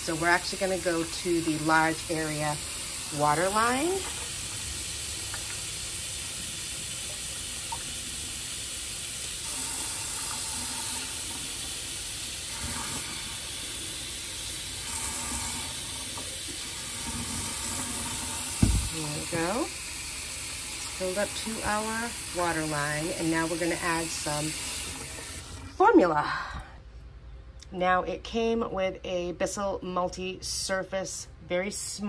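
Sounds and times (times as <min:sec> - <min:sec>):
faucet water filling plastic tank: 0:00.0 - 0:25.8
sharp knock: 0:18.6 - 0:19.0.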